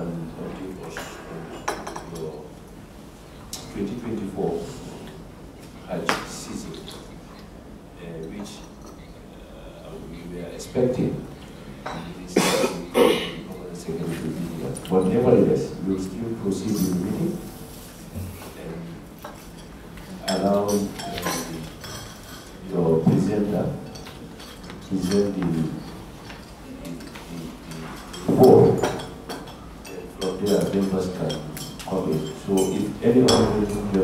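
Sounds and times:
person coughing: 12.4 - 13.5.

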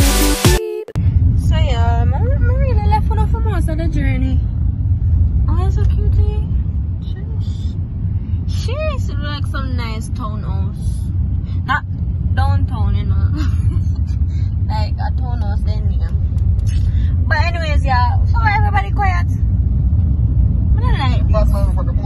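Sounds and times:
people talking: 0.4 - 4.5, 5.5 - 7.8, 8.4 - 19.4, 20.8 - 22.0
car rumble from inside cabin: 0.9 - 22.0.

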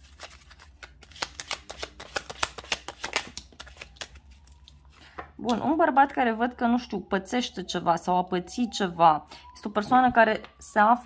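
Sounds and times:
cards being shuffled: 0.0 - 5.2.

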